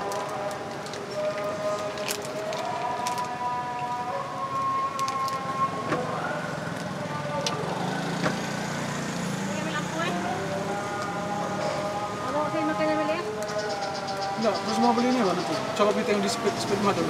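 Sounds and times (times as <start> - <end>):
plastic bag crinkling: 0.0 - 3.3.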